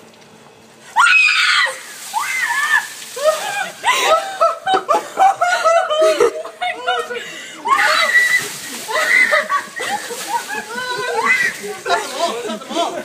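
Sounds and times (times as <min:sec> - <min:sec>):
water splashing: 0:01.0 - 0:05.8, 0:07.7 - 0:13.0
people screaming: 0:01.0 - 0:13.0.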